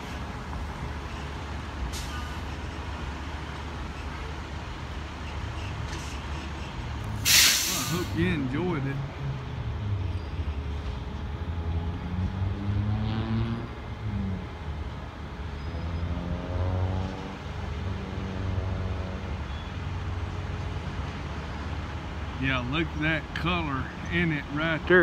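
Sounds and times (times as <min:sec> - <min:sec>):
traffic engine rumble: 0:00.0 - 0:25.0
vehicles passing: 0:00.0 - 0:25.0.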